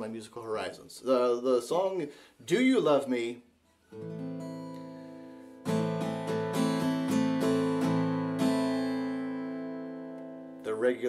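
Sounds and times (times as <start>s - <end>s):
acoustic guitar chords: 3.9s - 11.0s.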